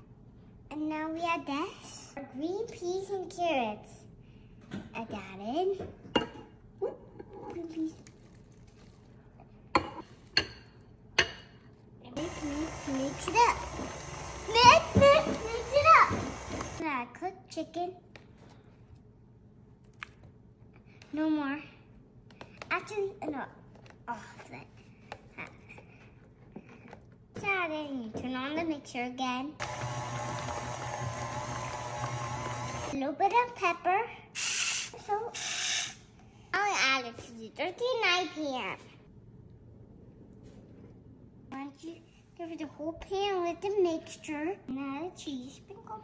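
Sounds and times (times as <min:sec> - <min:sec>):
stand mixer running: 0:12.2 - 0:16.8, 0:29.6 - 0:33.0.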